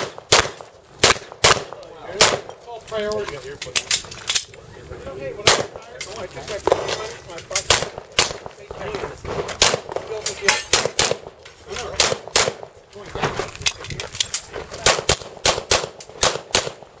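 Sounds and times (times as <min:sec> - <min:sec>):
handgun shots: 0:09.6 - 0:11.2, 0:11.8 - 0:12.6, 0:14.8 - 0:16.8.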